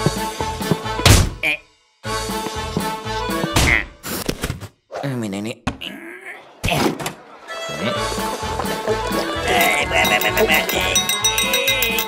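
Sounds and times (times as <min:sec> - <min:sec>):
comic impact thunk: 0:01.0 - 0:01.4
cartoon soundtrack music: 0:06.4 - 0:12.0.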